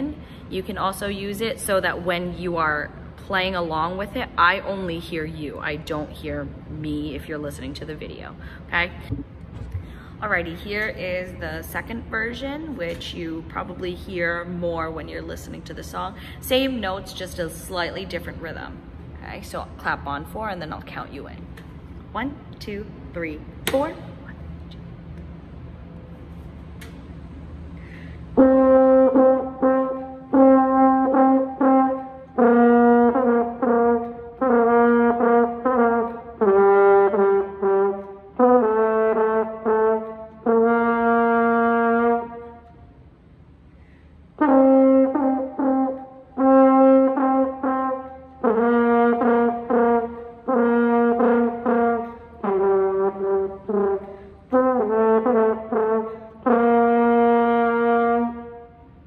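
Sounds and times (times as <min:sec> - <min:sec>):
solo french horn: 0:28.3 - 0:43.0, 0:44.3 - 0:59.0.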